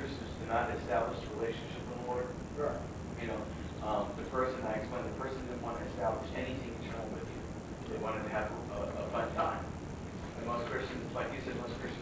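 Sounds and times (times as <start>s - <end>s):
person talking: 0.0s - 9.7s
steady low hum: 0.0s - 12.0s.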